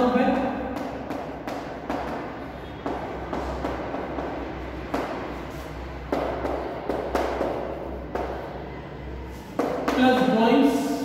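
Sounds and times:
chalk tapping on blackboard: 0.3 - 8.5, 9.4 - 10.4
chalk scratching: 2.8 - 7.7.

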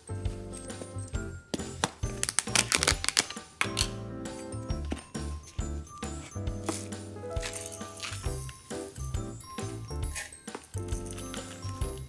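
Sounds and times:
background music: 0.0 - 12.0
paper seal tearing: 2.2 - 3.9.

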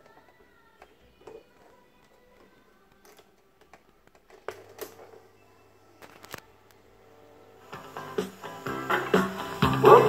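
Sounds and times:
faint music from speakers: 0.0 - 10.0.

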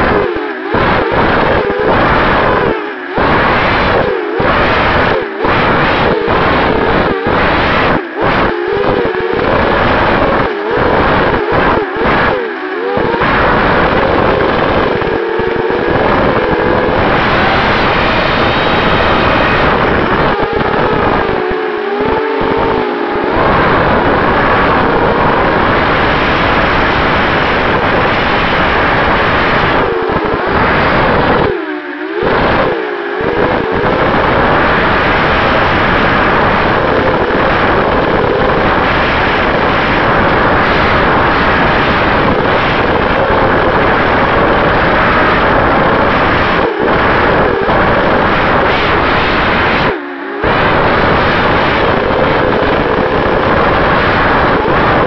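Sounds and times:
drone motors whining: 0.0 - 55.0
rush of air noise: 0.0 - 55.0.

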